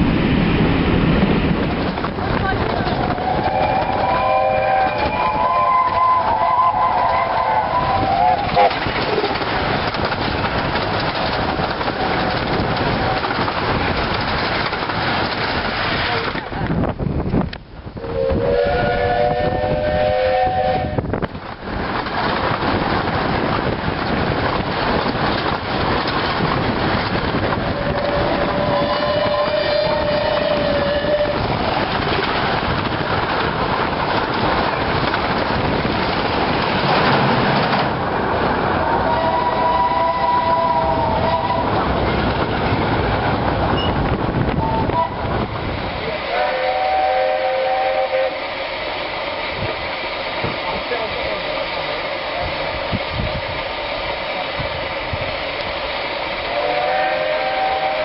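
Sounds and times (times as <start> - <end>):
train wheel and running noise: 0.0 - 58.0
train horn blasts: 3.2 - 8.8, 18.0 - 21.1, 27.6 - 31.4, 38.8 - 41.8, 44.6 - 45.4, 46.3 - 48.4, 56.5 - 58.0.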